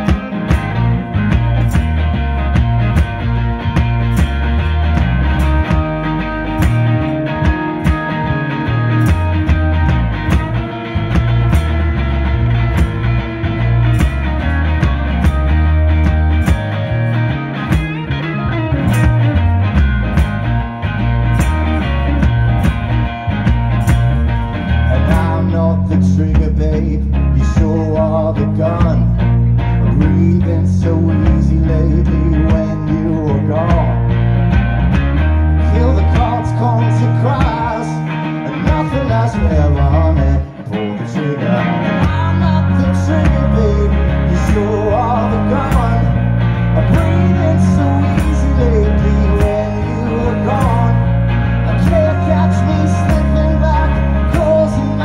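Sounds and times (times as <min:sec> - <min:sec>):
sharp percussion hits: 0:00.0 - 0:25.5
amplified guitar: 0:00.0 - 0:55.0
heavy bass line: 0:00.0 - 0:55.0
loud blues-rock music: 0:00.0 - 0:55.0.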